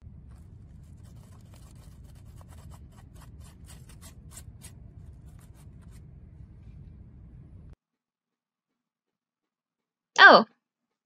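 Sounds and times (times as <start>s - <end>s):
steady low rumble: 0.0s - 7.8s
fingers scratching a leaf: 0.3s - 6.0s.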